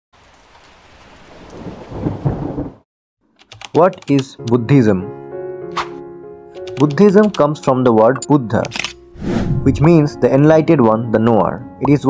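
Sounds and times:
steady rain falling: 0.2s - 2.8s
low rumble of thunder: 1.5s - 2.8s.

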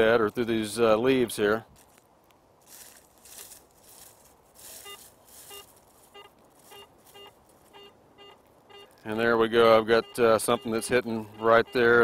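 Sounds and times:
search coil swishing through weeds: 2.6s - 7.7s
metal detector short beeps: 4.7s - 9.0s, 9.9s - 12.0s.

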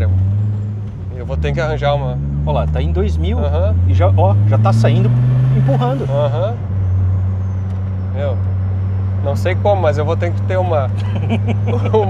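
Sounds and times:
car engine droning from inside cabin: 0.0s - 12.0s.

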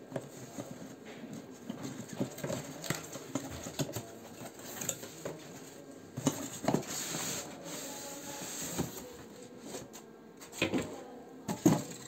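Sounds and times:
sliding scrape: 6.8s - 9.1s.

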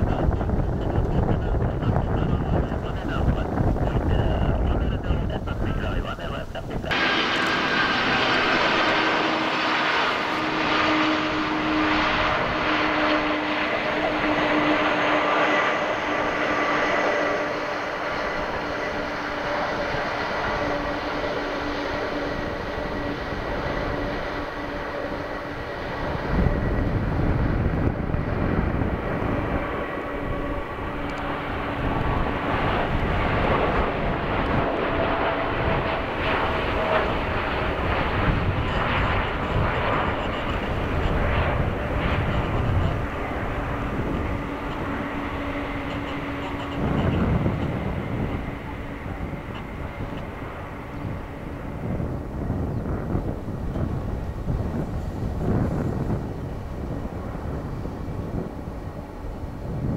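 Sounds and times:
deep jet rumble: 0.0s - 59.9s
jet engines whining: 0.0s - 59.9s.

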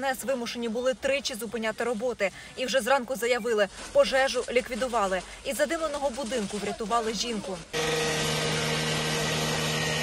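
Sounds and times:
angle grinder cutting metal: 7.8s - 10.0s.

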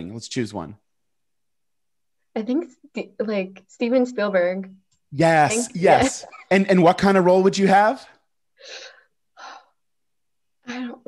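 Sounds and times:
person breathing softly: 8.6s - 9.8s.

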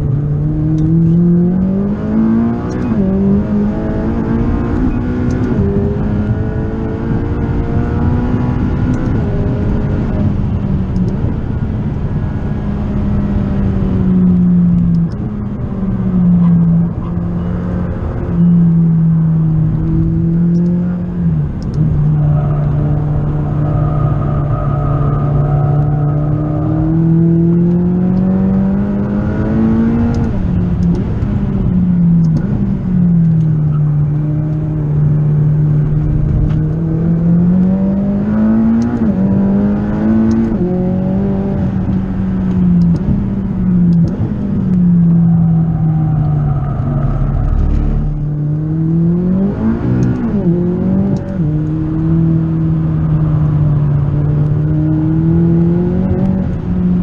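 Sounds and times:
car engine accelerating: 0.0s - 57.0s.

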